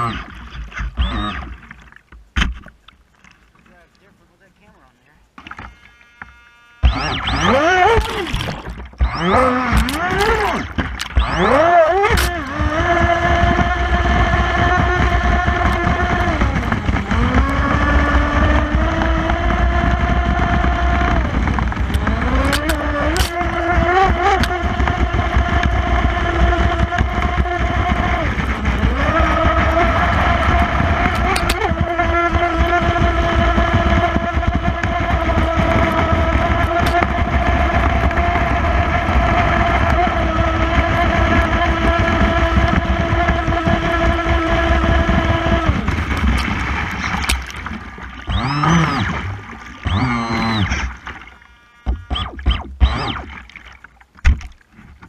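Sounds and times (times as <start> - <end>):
electric motor whining: 0.0 - 1.8, 4.0 - 53.4
wind rumble on microphone: 6.9 - 50.8
hull slapping water: 6.9 - 55.0.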